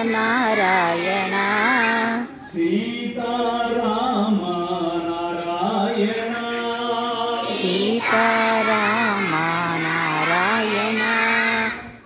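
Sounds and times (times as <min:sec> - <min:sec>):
children singing devotional song: 0:00.0 - 0:12.0.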